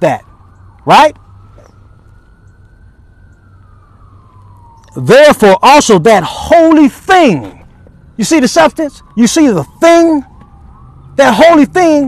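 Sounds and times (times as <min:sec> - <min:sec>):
distant siren wail: 0:00.0 - 0:12.0.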